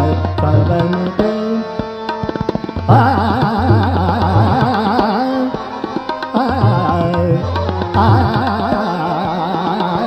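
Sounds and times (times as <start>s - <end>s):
man singing rapid vocal runs: 2.9s - 5.7s, 6.3s - 10.0s.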